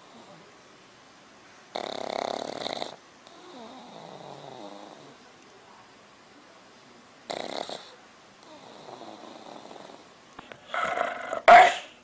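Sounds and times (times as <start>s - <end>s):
dog snoring: 0.0s - 0.4s, 1.7s - 5.2s, 7.3s - 10.1s.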